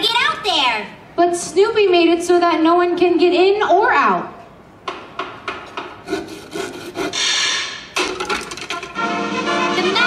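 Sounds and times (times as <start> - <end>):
rasping saw strokes: 6.0 - 7.4.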